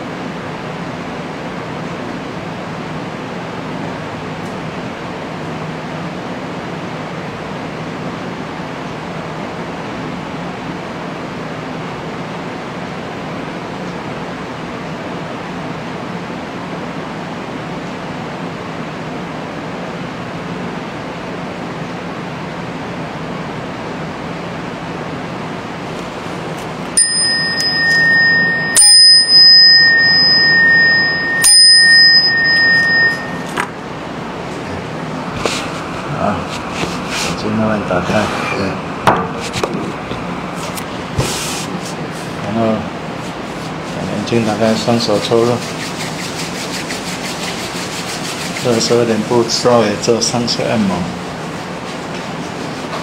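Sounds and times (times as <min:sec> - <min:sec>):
room hiss: 0:23.2 - 0:53.0
small meditation bell ringing: 0:27.0 - 0:33.7.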